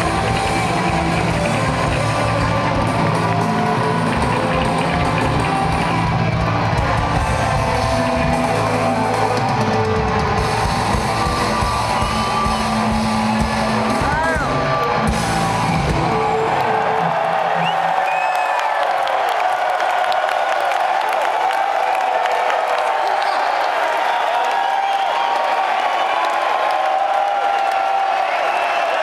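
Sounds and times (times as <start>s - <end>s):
crowd cheering and whooping: 0.0s - 29.0s.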